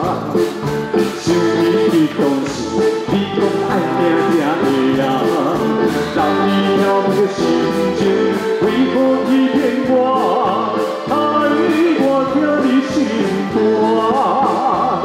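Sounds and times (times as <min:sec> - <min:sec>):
live band playing slow song: 0:00.0 - 0:15.0
man singing: 0:00.0 - 0:15.0.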